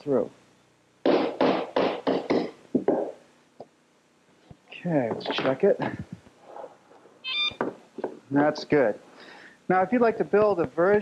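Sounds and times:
metal detector beep: 7.2 - 7.6.

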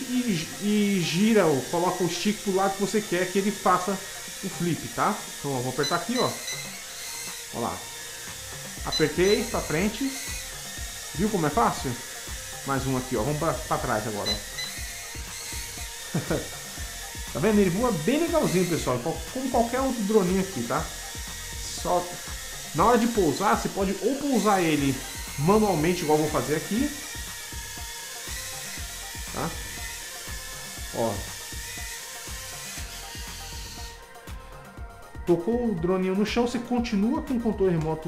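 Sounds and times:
drone propellers whirring: 0.0 - 35.3
music with steady beat: 0.0 - 38.0
quadcopter motors whining: 0.0 - 38.0.

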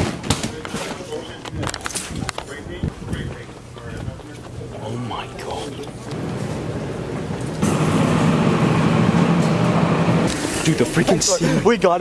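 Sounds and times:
rushing air with low hum: 6.1 - 10.4.

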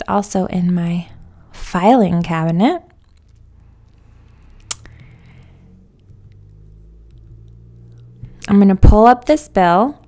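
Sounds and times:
room hum: 0.0 - 10.0.

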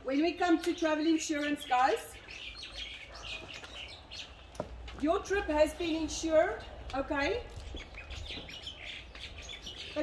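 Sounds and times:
small birds chirping: 0.1 - 10.0.

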